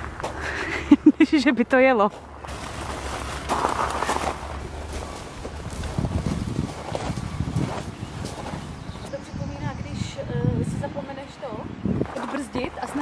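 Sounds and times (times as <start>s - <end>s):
footsteps crunching on gravel: 2.1s - 9.1s
pram wheels on gravel: 2.1s - 9.1s.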